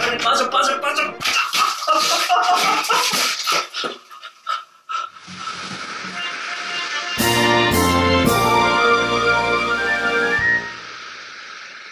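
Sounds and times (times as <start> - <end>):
steady hiss: 5.2 - 11.9.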